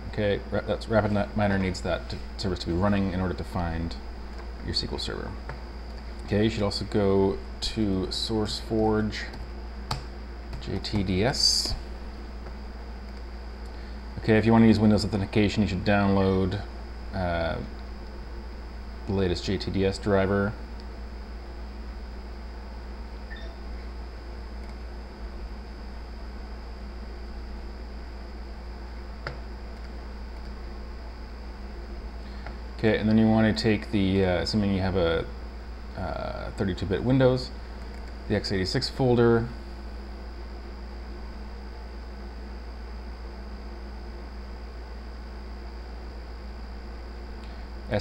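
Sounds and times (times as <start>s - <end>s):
background hum and hiss: 0.0s - 48.0s.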